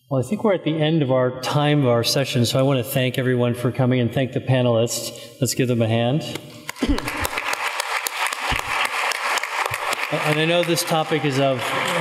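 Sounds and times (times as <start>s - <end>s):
audience applauding: 6.7s - 12.0s.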